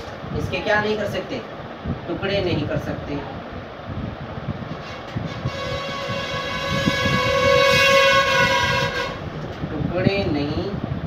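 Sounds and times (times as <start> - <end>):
long steady horn tone: 4.7 - 9.4.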